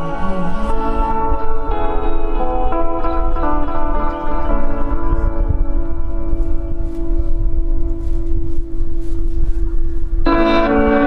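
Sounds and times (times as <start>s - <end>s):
electric guitar note ringing: 0.0s - 11.0s
low rumble: 0.0s - 11.0s.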